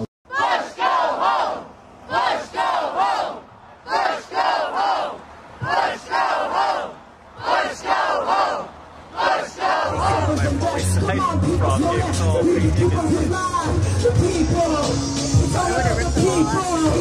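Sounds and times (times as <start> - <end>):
crowd chanting in unison: 0.3 - 17.0.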